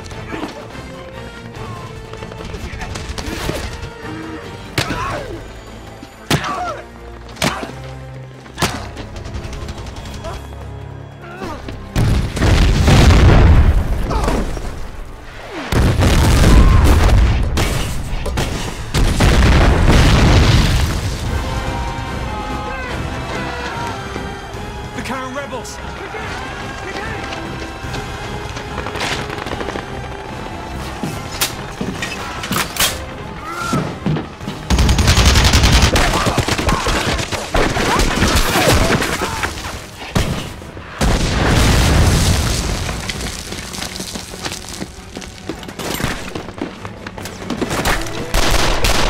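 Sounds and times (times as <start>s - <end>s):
explosion blast: 12.0s - 14.6s, 15.7s - 17.6s, 18.9s - 21.8s, 41.0s - 43.2s
low rumble with debris: 12.0s - 22.2s, 33.9s - 45.5s.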